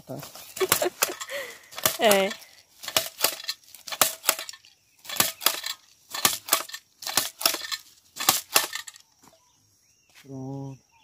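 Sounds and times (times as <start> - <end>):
jab planter clacking: 0.6 - 9.0.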